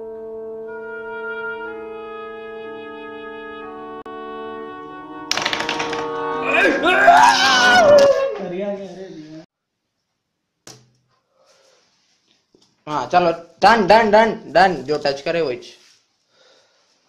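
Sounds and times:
slow held horn chords: 0.0 - 7.2
loud excited voices: 6.4 - 8.5.

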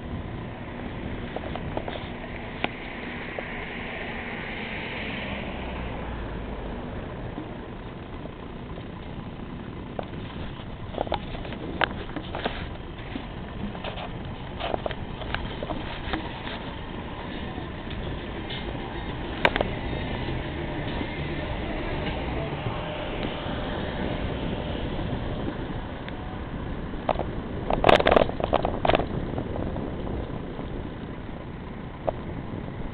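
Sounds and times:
vehicle engine and road noise: 0.0 - 32.9.

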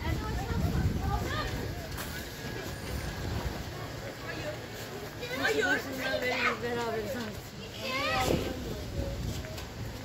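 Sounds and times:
wind rumbling on microphone: 0.0 - 4.0, 8.0 - 10.0
faint voices: 0.0 - 10.0.

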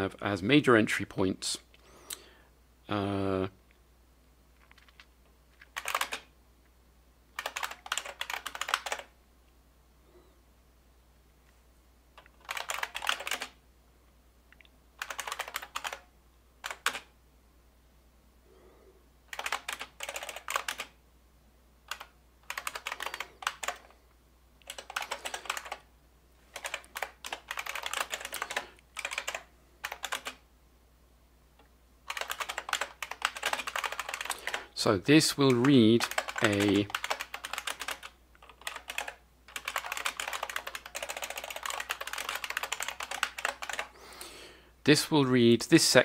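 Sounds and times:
typing on computer keyboard: 4.6 - 6.3, 7.4 - 9.1, 12.2 - 13.6, 15.0 - 17.1, 19.3 - 21.0, 21.9 - 24.0, 24.6 - 25.9, 26.5 - 30.4, 32.1 - 34.7, 35.4 - 44.0.

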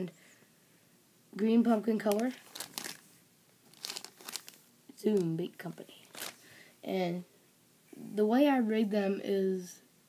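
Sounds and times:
plastic bag crinkling: 2.0 - 6.5.

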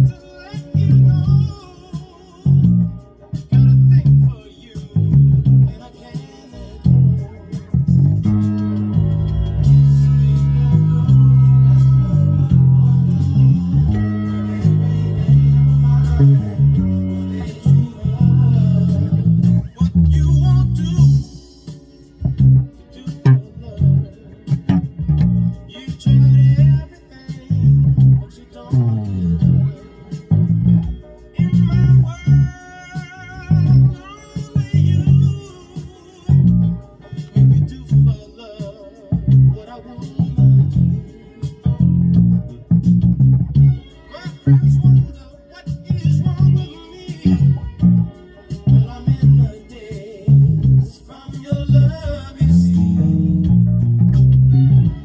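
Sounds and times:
electric bass guitar: 0.0 - 55.0.

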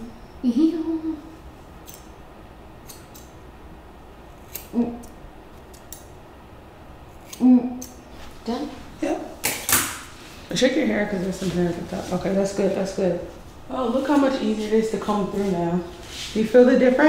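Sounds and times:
shears snipping hair: 1.8 - 2.1, 2.8 - 3.4, 4.2 - 6.1, 7.1 - 8.7.

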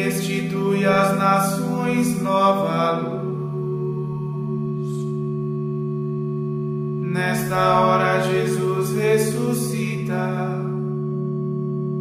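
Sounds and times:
held instrumental chord: 0.0 - 12.0.

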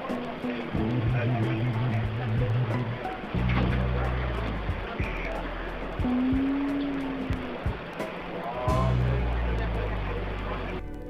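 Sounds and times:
background music: 0.0 - 11.0
subway train rumble: 0.0 - 11.0
man humming: 0.3 - 7.9.

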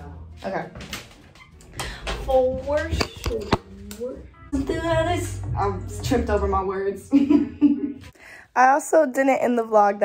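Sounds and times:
woman's voice: 2.0 - 10.0.

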